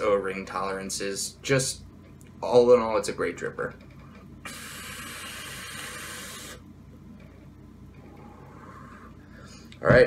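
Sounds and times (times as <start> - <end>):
vape coil sizzling hiss: 4.4 - 6.6.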